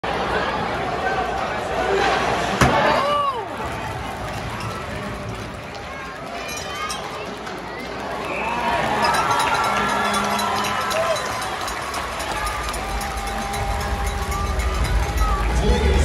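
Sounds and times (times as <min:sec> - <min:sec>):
arena crowd voices: 0:00.0 - 0:16.0.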